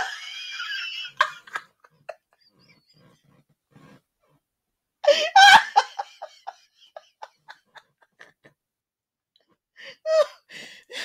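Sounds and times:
woman laughing: 0:00.0 - 0:03.0, 0:05.0 - 0:08.6.

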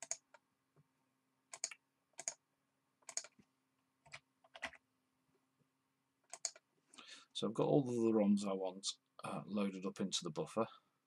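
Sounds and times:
keyboard keystrokes: 0:00.0 - 0:00.3, 0:03.1 - 0:03.4, 0:06.3 - 0:06.6
computer mouse clicks: 0:00.0 - 0:00.4, 0:01.5 - 0:02.4, 0:03.0 - 0:03.4, 0:06.3 - 0:06.6.

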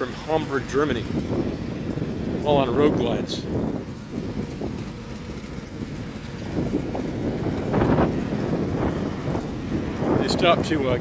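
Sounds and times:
motorcycles idling: 0:00.0 - 0:11.0.

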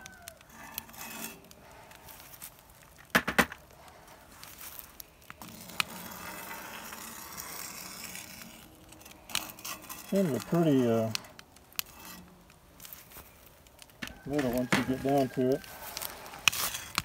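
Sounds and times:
metal ladle scraping skillet: 0:00.0 - 0:17.0.

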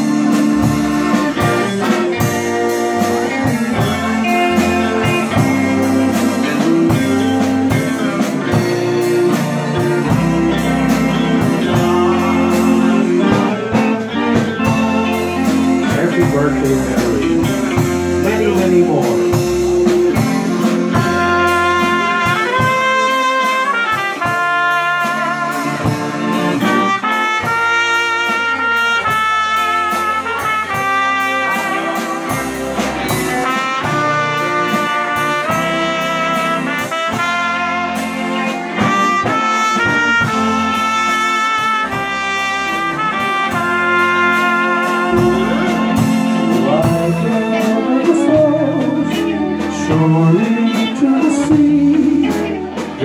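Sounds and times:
drum kit: 0:00.0 - 0:53.0
electric guitar: 0:00.0 - 0:53.0
trumpet solo: 0:00.0 - 0:53.0.

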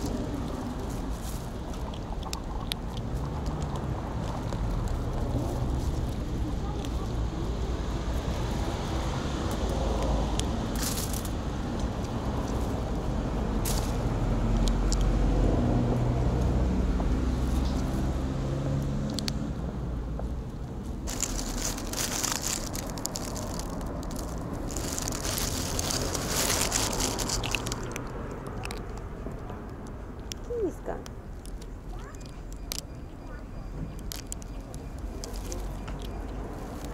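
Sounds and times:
vehicle engine passing: 0:00.0 - 0:31.1
crackling crunching noise: 0:00.0 - 0:36.9
steady low traffic rumble: 0:00.0 - 0:36.9.

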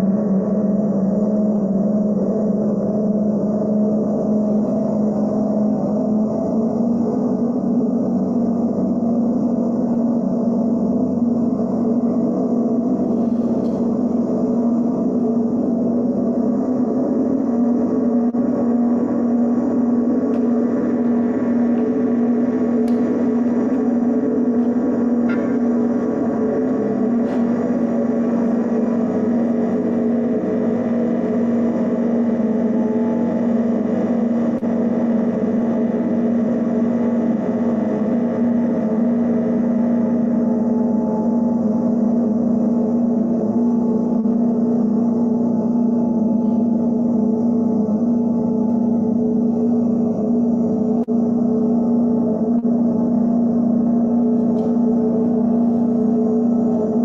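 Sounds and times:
electronic drone music: 0:00.0 - 0:57.0.

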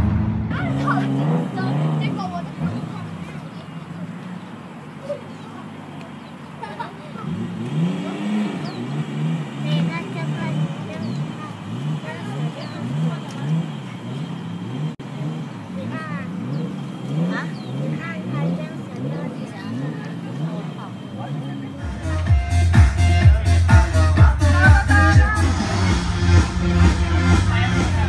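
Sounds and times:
car engine revving: 0:00.0 - 0:04.5, 0:07.1 - 0:28.0.

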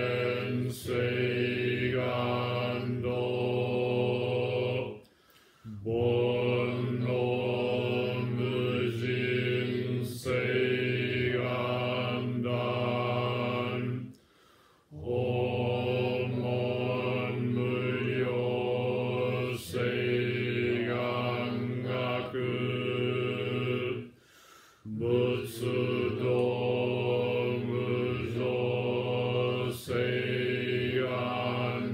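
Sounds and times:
low monotone chanting: 0:00.0 - 0:14.2, 0:14.9 - 0:24.2, 0:24.8 - 0:31.9.

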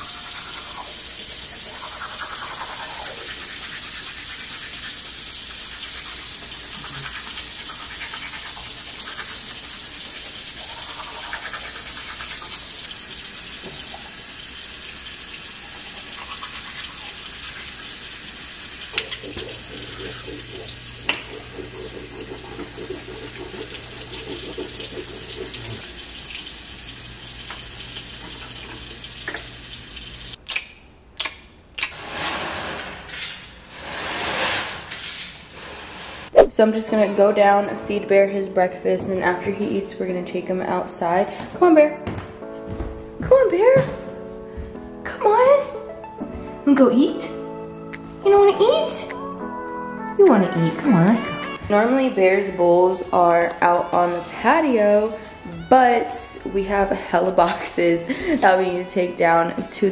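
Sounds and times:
teeth brushing: 0:01.7 - 0:12.7, 0:15.8 - 0:17.9, 0:18.9 - 0:26.2.

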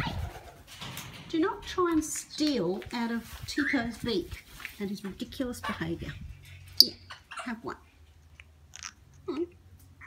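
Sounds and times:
parrot beak crunching nut: 0:08.4 - 0:09.0.

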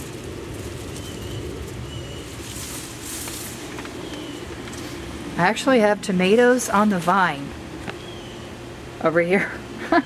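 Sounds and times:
rustle: 0:00.0 - 0:08.9
low traffic-like rumble: 0:00.0 - 0:10.0
birds chirping: 0:00.1 - 0:08.9.

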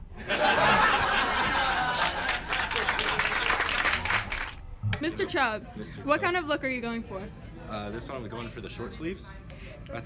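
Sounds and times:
laughter: 0:00.1 - 0:03.4
low thump: 0:04.8 - 0:05.1.

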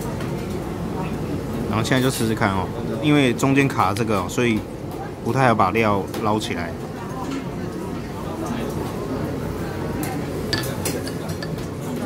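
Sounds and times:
restaurant hubbub: 0:00.0 - 0:12.0
spoon clinking against pot: 0:10.5 - 0:11.6.

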